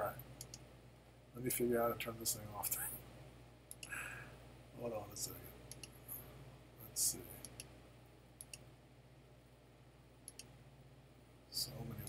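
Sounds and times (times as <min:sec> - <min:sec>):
low steady hum: 0:00.0 - 0:12.0
computer mouse clicks: 0:00.4 - 0:00.6, 0:03.7 - 0:04.0, 0:05.7 - 0:06.0, 0:07.4 - 0:07.7, 0:08.4 - 0:08.7, 0:10.3 - 0:10.5.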